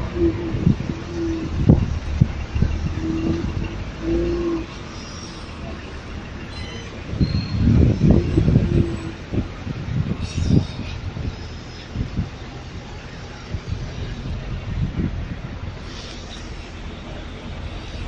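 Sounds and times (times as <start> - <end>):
street traffic rumble: 0.0 - 18.0.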